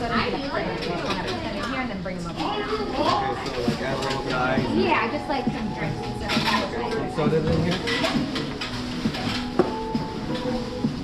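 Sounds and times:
indoor hall hubbub: 0.0 - 11.0.

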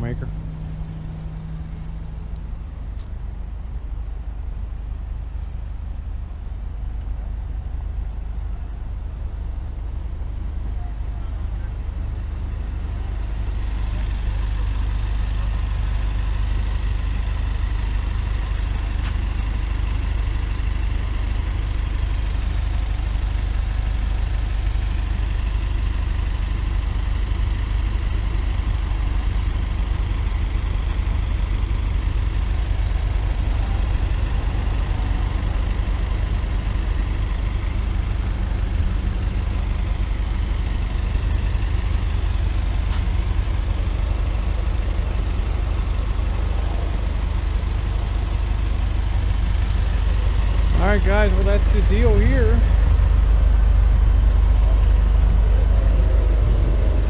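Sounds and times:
large engine idling: 0.0 - 57.0.

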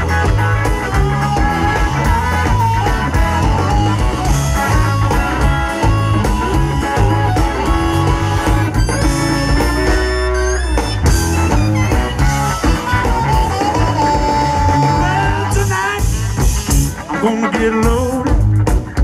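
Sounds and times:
harmonica: 0.0 - 17.3
bass: 0.0 - 19.0
drums: 0.0 - 19.0
electric guitar: 0.0 - 19.0.

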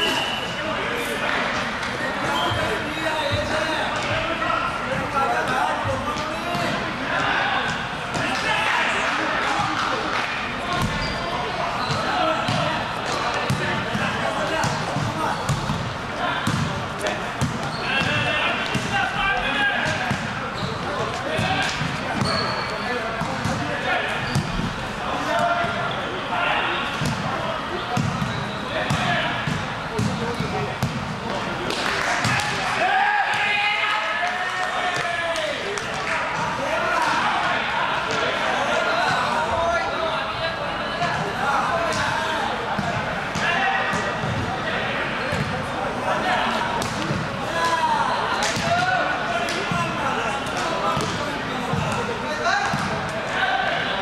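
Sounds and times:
volleyball hits: 9.4 - 11.2, 11.8 - 19.2, 19.8 - 24.8, 26.9 - 33.6, 46.7 - 53.1
players shouting: 31.5 - 54.0.

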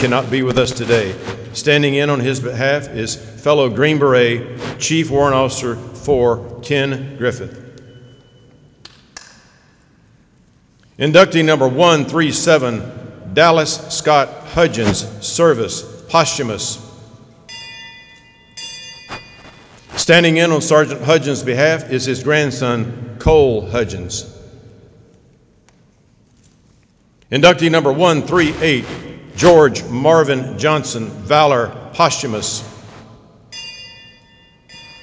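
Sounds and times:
bell ringing: 7.8 - 8.8, 17.5 - 19.9, 33.5 - 35.0.

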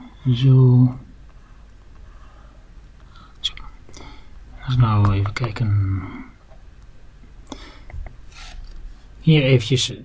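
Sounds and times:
soft breath: 1.3 - 4.4, 7.4 - 9.2.

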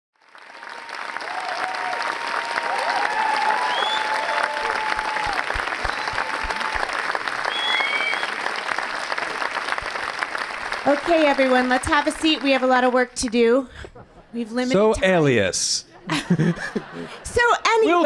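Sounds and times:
audience applauding: 0.2 - 13.5
people cheering: 0.3 - 13.0
high whistles: 3.4 - 6.6, 7.4 - 8.5.

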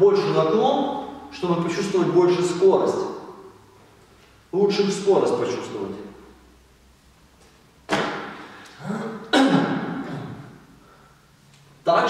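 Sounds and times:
cap slapping onto wooden floor: 7.9 - 8.4.

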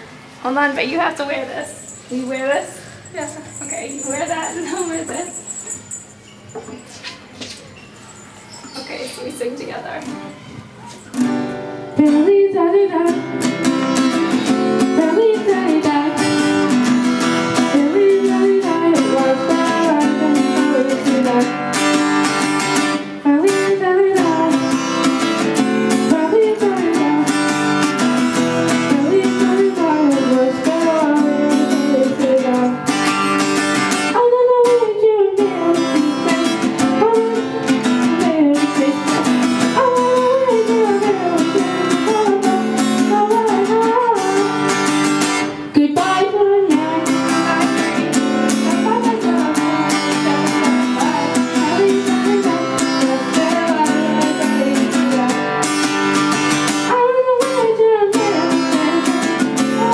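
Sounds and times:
acoustic guitar strumming: 0.0 - 59.9
woman singing along: 0.8 - 5.7, 11.9 - 22.2, 22.8 - 27.8, 28.7 - 33.1, 33.8 - 56.0, 56.6 - 59.9
child singing into a microphone: 12.0 - 16.6, 17.6 - 21.6, 23.2 - 25.0, 25.8 - 27.4, 28.8 - 32.8, 34.1 - 44.7, 45.7 - 55.5, 56.8 - 59.9.

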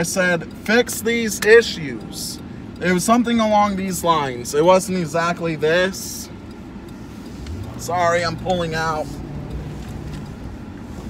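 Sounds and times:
car engine and tyres humming: 0.0 - 11.0.

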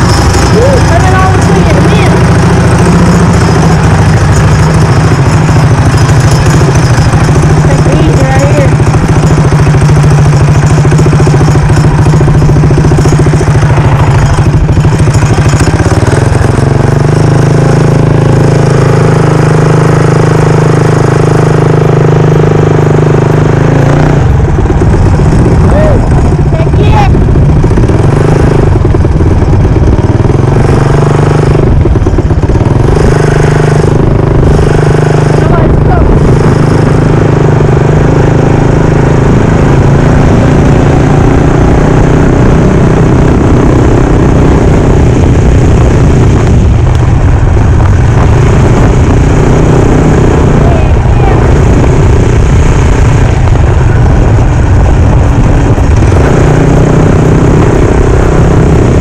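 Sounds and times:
mini bike engine running: 0.0 - 59.0.

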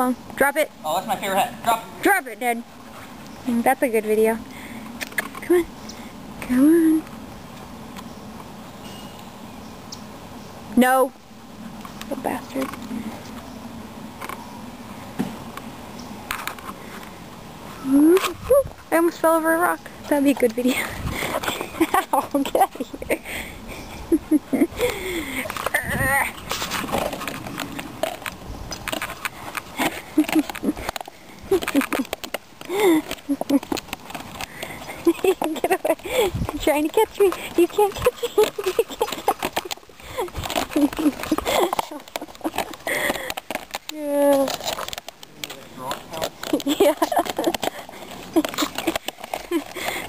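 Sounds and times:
person laughing: 21.1 - 26.0, 29.8 - 33.8, 34.6 - 36.6, 37.4 - 43.4, 46.5 - 50.0.

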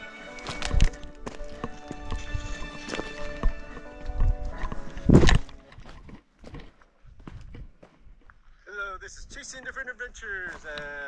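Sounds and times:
steady music-like tones: 0.0 - 6.1
footsteps on gravelly trail: 0.0 - 8.4, 9.4 - 11.0.

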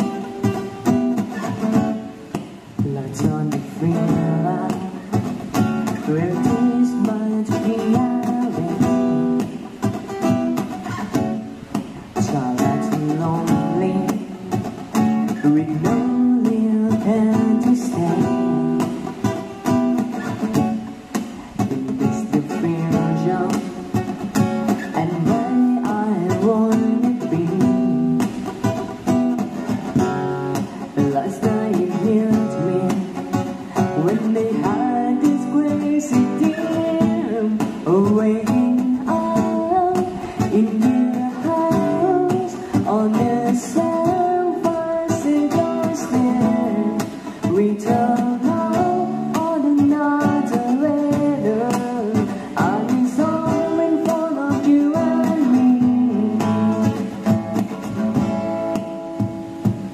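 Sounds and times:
acoustic guitar: 0.0 - 59.9
woman singing: 2.8 - 5.1, 5.9 - 9.5, 12.2 - 14.3, 15.3 - 19.0, 24.8 - 28.2, 30.9 - 57.1.

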